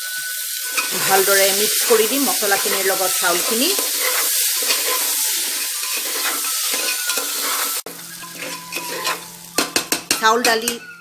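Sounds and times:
rice sizzling in hot oil: 0:00.0 - 0:10.8
spatula scraping through grains: 0:00.6 - 0:09.4.

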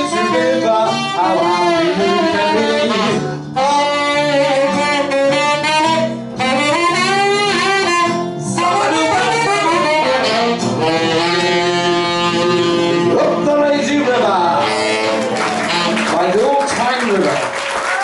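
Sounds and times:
tenor saxophone playing swing jazz: 0:00.0 - 0:16.4
bass accompaniment: 0:00.0 - 0:18.0
guitar accompaniment: 0:00.0 - 0:18.0.

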